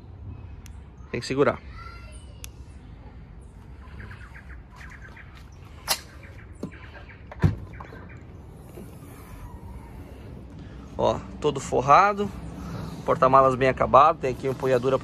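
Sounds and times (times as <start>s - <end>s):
birds chirping faintly: 0.0s - 15.0s.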